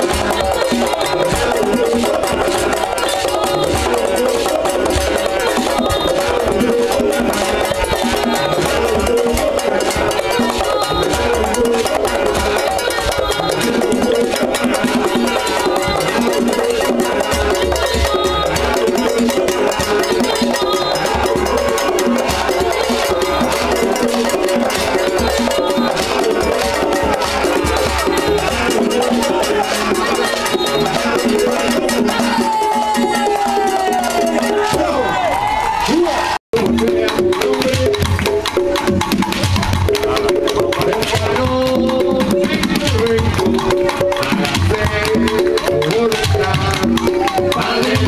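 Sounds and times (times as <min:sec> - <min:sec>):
conga drums played by hand: 0:00.0 - 0:35.2, 0:36.5 - 0:48.0
voices singing: 0:00.0 - 0:35.3, 0:36.6 - 0:48.0
cajon: 0:00.0 - 0:35.7, 0:36.5 - 0:48.0.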